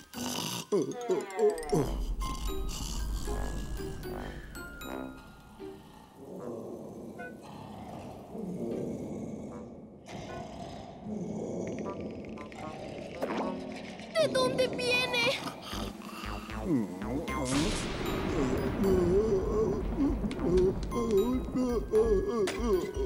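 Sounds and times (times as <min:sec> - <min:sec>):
cartoon snoring and grunting: 0:00.0 - 0:05.0, 0:05.6 - 0:23.0
background music: 0:00.0 - 0:07.7, 0:08.3 - 0:23.0.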